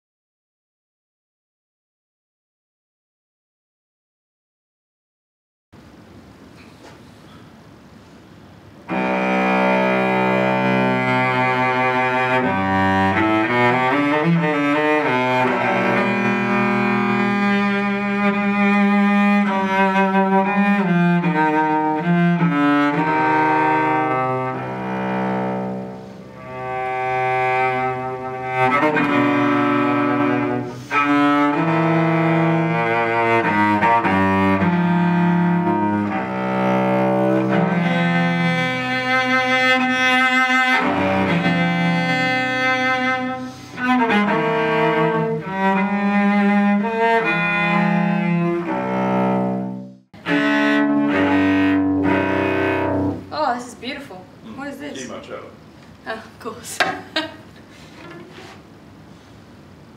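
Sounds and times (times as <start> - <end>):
solo bowed cello: 8.8 - 53.4.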